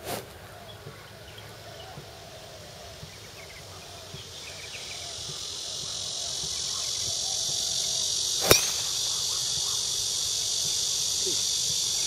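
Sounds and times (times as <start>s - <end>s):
high-pitched insect chorus: 0.6s - 12.0s
golf club striking ball: 8.4s - 9.6s.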